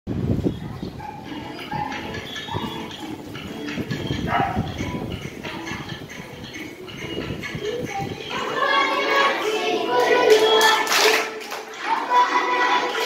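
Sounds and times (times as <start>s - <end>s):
children chattering and calling out: 0.4s - 13.0s.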